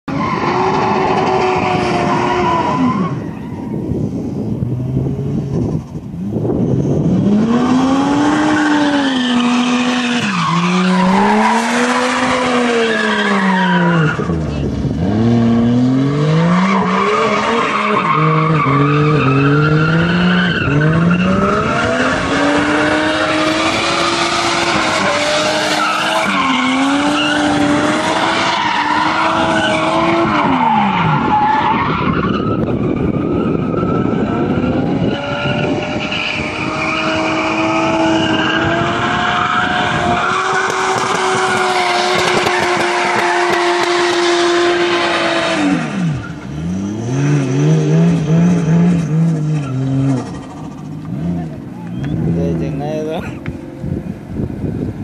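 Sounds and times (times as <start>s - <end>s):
car engine revving: 4.6s - 53.6s.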